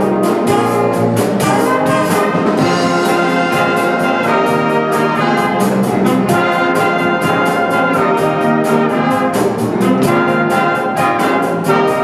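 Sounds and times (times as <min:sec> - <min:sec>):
jazz big band playing: 0:00.0 - 0:12.0.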